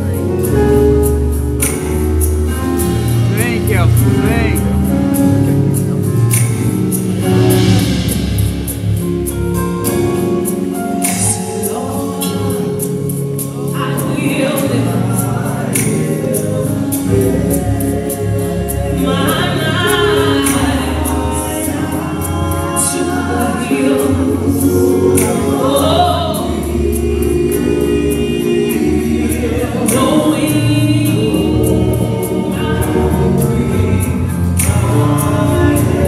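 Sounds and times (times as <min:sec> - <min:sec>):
band with drums and keyboard: 0:00.0 - 0:36.0
gospel vocal ensemble singing: 0:00.0 - 0:36.0.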